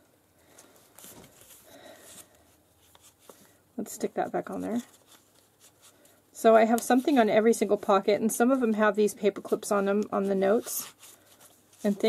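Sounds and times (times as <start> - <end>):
paper and envelopes rustling: 0.5 - 3.5, 4.1 - 8.0, 9.3 - 12.0.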